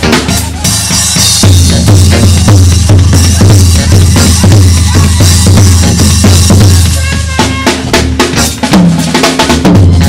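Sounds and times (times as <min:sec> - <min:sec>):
drum kit strokes: 0:00.0 - 0:10.0
jazz band playing: 0:00.0 - 0:10.0
low bass line: 0:01.4 - 0:07.0.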